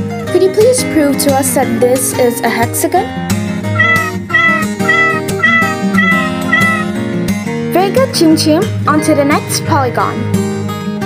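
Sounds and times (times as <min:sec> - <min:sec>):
light guitar music: 0:00.0 - 0:11.0
cat meowing: 0:03.8 - 0:06.9.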